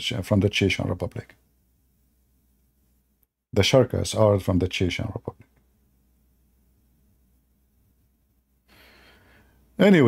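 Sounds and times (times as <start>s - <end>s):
man speaking: 0.0s - 1.4s, 3.5s - 5.5s, 9.8s - 10.0s
man breathing in: 8.6s - 9.7s.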